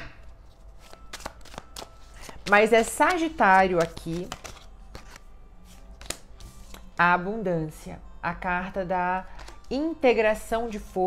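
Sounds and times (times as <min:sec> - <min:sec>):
playing cards being shuffled: 0:00.4 - 0:06.9.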